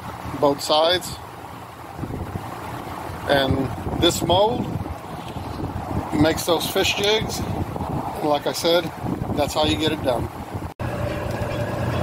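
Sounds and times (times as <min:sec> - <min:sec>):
wind buffeting microphone: 0:01.9 - 0:12.0.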